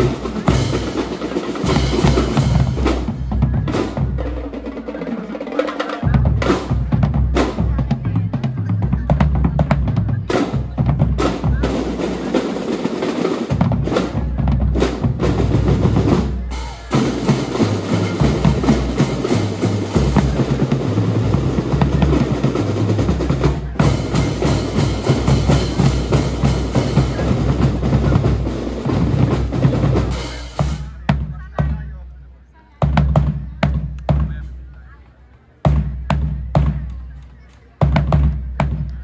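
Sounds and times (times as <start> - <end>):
snare drum rolls: 0.0 - 31.8
drum corps playing: 0.0 - 39.0.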